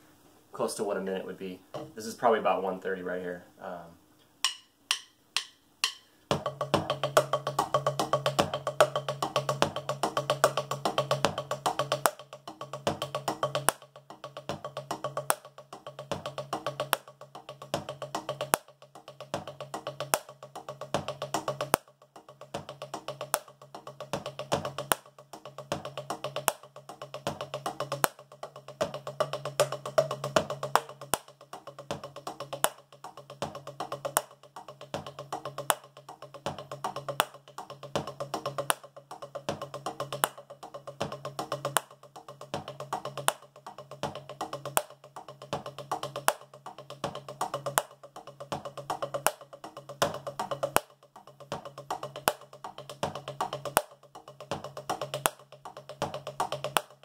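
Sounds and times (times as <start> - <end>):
drumsticks on practice pad: 1.6 - 2.7, 4.2 - 57.0.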